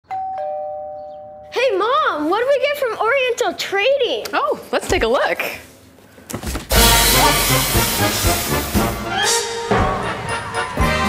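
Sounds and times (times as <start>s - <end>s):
two-note doorbell chime: 0.1s - 1.5s.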